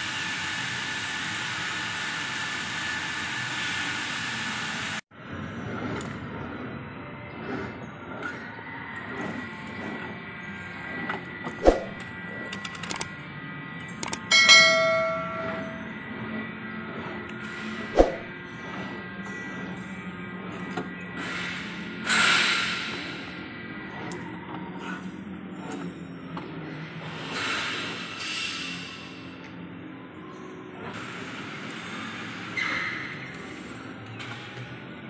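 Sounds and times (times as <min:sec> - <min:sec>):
machinery hum: 0:00.0 - 0:35.0
short swish: 0:11.6 - 0:12.0, 0:17.9 - 0:18.3
clicks: 0:13.8 - 0:14.3
bell-like ding: 0:14.2 - 0:15.9.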